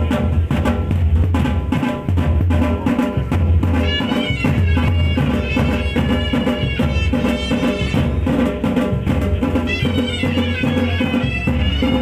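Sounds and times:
deep drums beating: 0.0 - 12.0
pitched melody: 3.8 - 8.4, 9.6 - 12.0.

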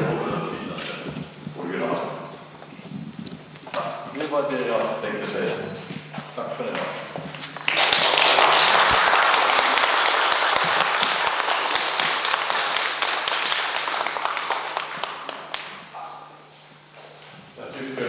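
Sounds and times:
voices: 0.0 - 7.1
audience applauding: 7.6 - 15.8.

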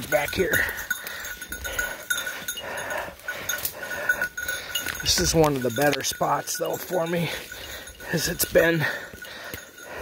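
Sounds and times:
footsteps crunching: 0.1 - 10.0.

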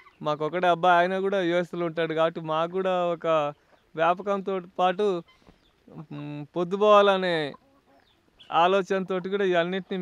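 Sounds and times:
chicken calling: 0.0 - 0.8, 5.0 - 6.5, 7.2 - 10.0.

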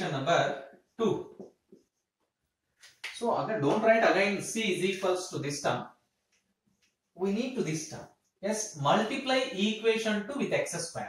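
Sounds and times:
man speaking: 0.0 - 1.3, 3.1 - 5.8, 7.2 - 11.0
marker pen on whiteboard: 1.3 - 5.6.

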